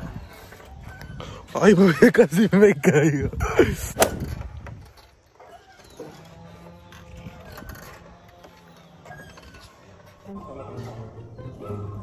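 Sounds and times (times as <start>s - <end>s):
swing chains creaking and clinking: 0.0s - 12.0s
wind on microphone: 3.2s - 5.0s
faint background music: 5.9s - 12.0s.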